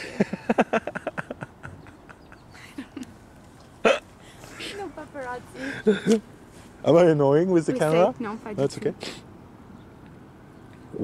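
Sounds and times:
woman laughing: 0.0s - 3.2s, 5.6s - 6.2s.

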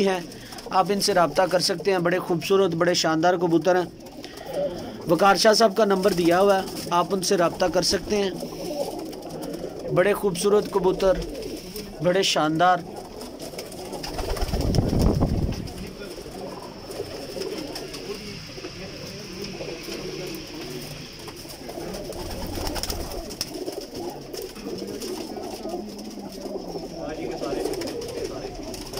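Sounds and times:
pigeons cooing: 0.0s - 28.9s.

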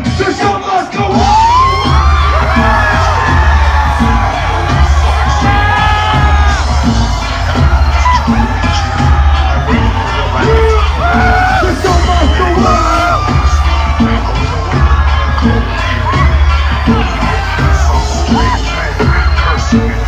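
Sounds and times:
heavy bass-driven hip hop beat: 0.0s - 20.0s
shouted vocals: 0.3s - 20.0s
audience yells and whoops: 1.0s - 20.0s.

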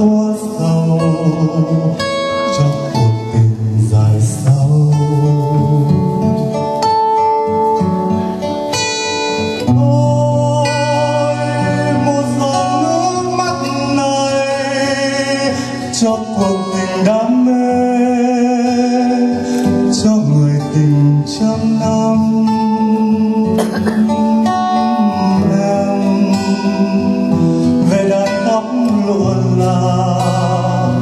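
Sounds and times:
man singing into microphone: 0.0s - 6.9s, 9.3s - 31.0s
acoustic guitar: 0.0s - 31.0s.

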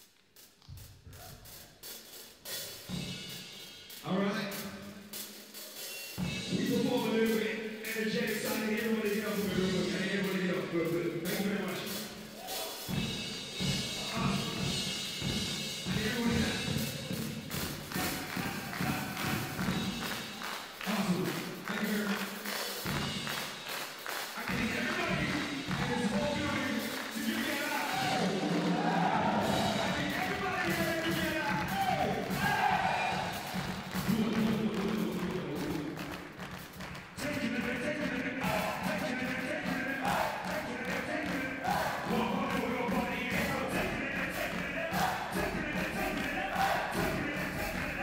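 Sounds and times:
drum kit playing a beat: 0.0s - 48.0s
person rapping: 6.5s - 12.1s, 17.9s - 19.9s, 24.4s - 28.6s, 29.7s - 32.7s, 34.0s - 36.1s, 37.2s - 48.0s.

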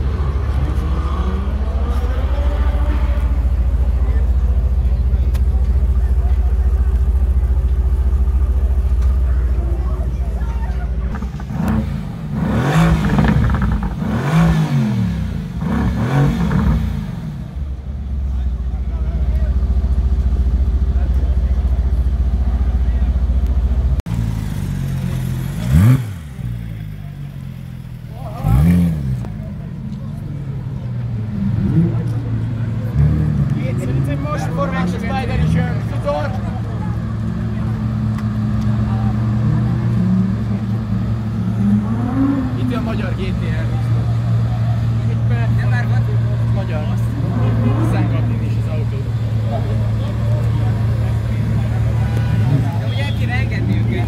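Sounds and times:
people talking: 0.0s - 13.8s, 17.8s - 24.0s, 25.0s - 54.0s
car engine idling and revving: 0.0s - 54.0s
car engine blipped sharply: 31.2s - 54.0s.

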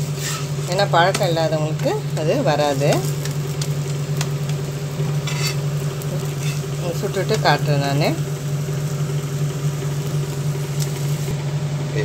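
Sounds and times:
flatbread sizzling on griddle: 0.0s - 11.5s
steady low hum: 0.0s - 12.0s.

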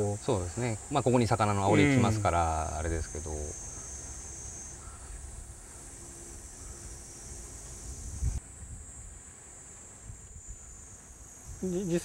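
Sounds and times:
high-pitched insect buzzing: 0.0s - 9.1s, 10.0s - 12.0s
wind rumble on microphone: 7.6s - 9.2s.

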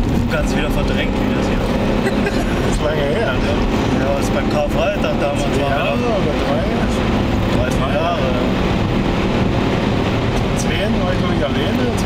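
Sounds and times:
car engine running at speed: 0.0s - 12.0s
road and tyre noise: 0.0s - 12.0s.

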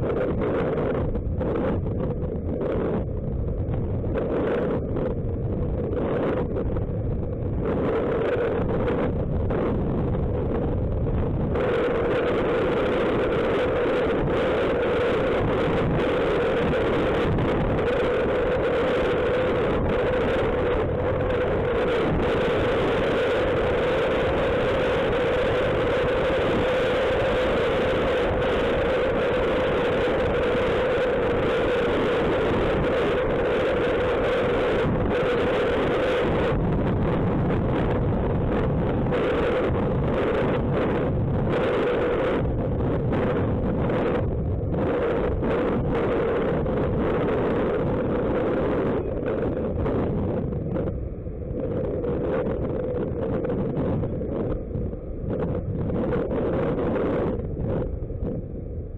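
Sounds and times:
wind rushing over microphone: 0.0s - 58.9s.

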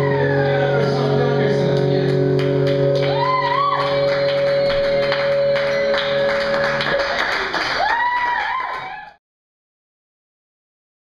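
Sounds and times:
high rising tone: 0.0s - 7.2s
punk band ringing chord: 0.0s - 7.2s.

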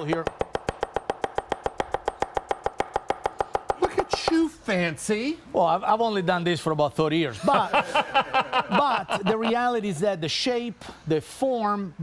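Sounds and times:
cleaver chopping on wooden board: 0.0s - 4.4s.

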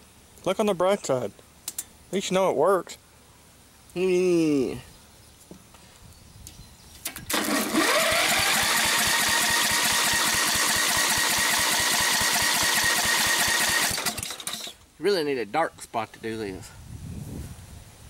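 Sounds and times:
mower engine cranked by starter: 7.1s - 14.9s
mower engine running with whine: 7.2s - 14.8s.

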